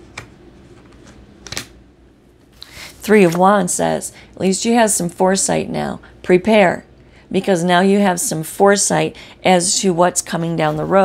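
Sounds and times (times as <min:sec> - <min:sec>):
papery card rustle: 0:02.8 - 0:03.4.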